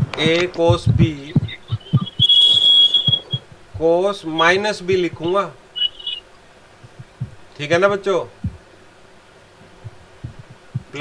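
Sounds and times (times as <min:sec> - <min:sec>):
soft low knocks: 0:00.0 - 0:06.2, 0:06.8 - 0:08.7, 0:09.6 - 0:11.0
high-pitched whistle-like tone: 0:01.4 - 0:03.4, 0:05.8 - 0:06.2.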